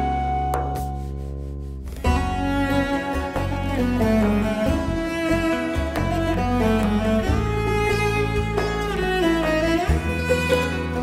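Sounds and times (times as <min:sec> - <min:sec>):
instrumental ensemble: 0:00.0 - 0:11.0
cello: 0:01.8 - 0:11.0.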